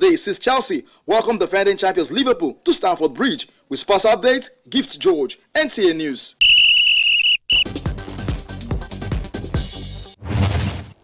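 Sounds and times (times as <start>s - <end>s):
high whistle tone: 6.4s - 7.7s.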